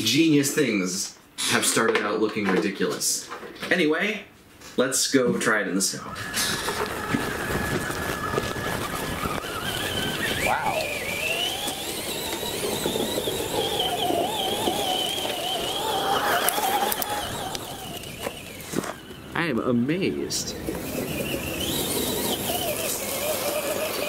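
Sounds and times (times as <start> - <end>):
electric motor whining: 6.0 - 24.0.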